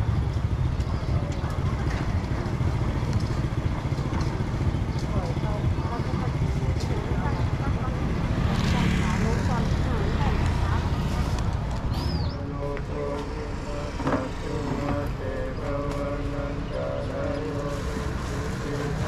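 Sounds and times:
traffic and motorbikes rumbling: 0.0 - 19.0
people's voices: 0.7 - 19.0
vehicle passing: 2.0 - 19.0.

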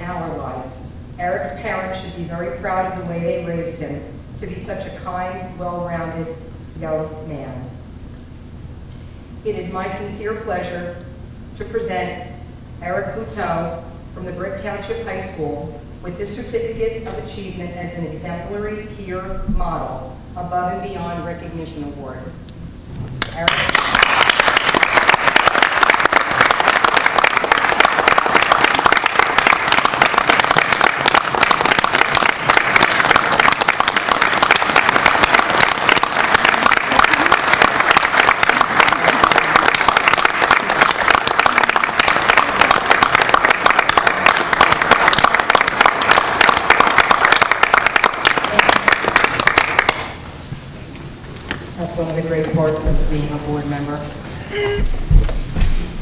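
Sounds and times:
crowd applauding: 23.2 - 50.1.

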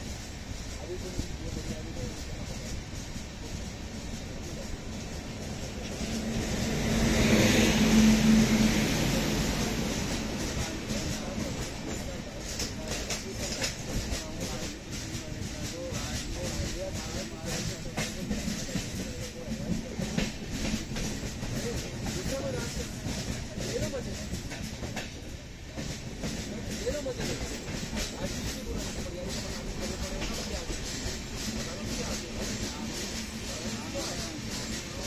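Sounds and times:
electric locomotive humming: 0.0 - 35.0
wheels clicking over rail joints: 9.5 - 35.0
goods wagons rattling: 25.8 - 35.0.

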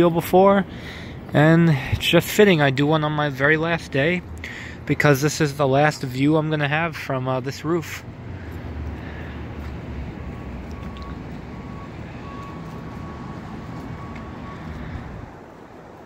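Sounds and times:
low rumble of city noise: 0.0 - 16.0.

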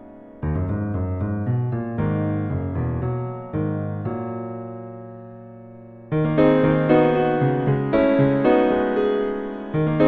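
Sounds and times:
piano playing chords: 0.0 - 10.0.

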